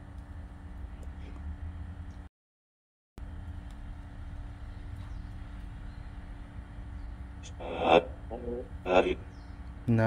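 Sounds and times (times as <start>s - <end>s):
radio static hiss: 7.4s - 9.3s.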